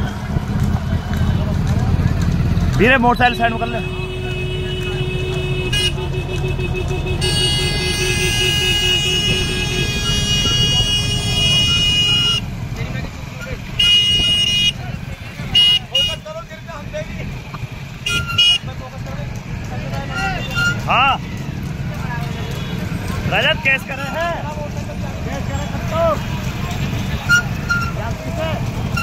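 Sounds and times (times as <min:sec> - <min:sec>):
motorcycle engines: 0:00.0 - 0:29.0
vehicle horns honking: 0:03.1 - 0:12.6, 0:13.2 - 0:16.4, 0:17.7 - 0:18.8, 0:20.0 - 0:21.0, 0:22.2 - 0:24.2, 0:25.6 - 0:29.0.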